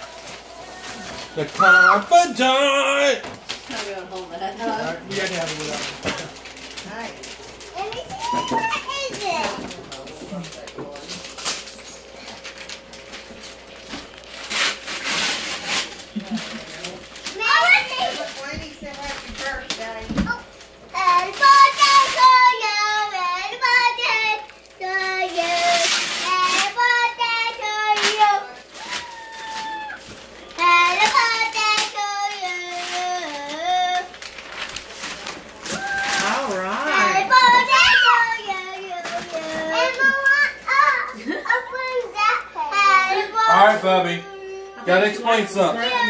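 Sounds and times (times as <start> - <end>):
young child calling out: 1.6 - 2.1
young child's high-pitched voice: 7.8 - 9.7, 17.4 - 18.7, 20.2 - 30.0, 36.9 - 44.9, 45.8 - 46.0.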